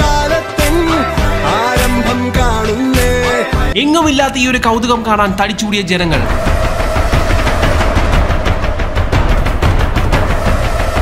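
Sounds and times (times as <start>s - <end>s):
steady high note: 6.1s - 11.0s.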